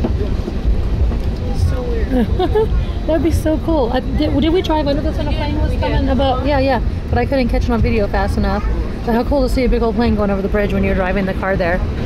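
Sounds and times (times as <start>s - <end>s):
airliner cabin rumble: 0.0s - 12.0s
faint voices: 0.0s - 12.0s.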